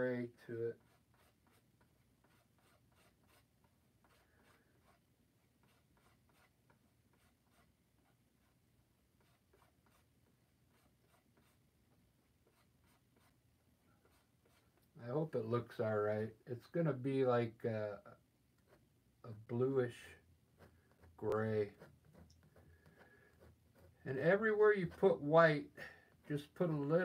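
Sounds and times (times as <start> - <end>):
palette knife scraping paint: 0.7 - 8.6, 9.2 - 11.6, 12.2 - 13.4, 14.0 - 14.9, 20.5 - 25.2.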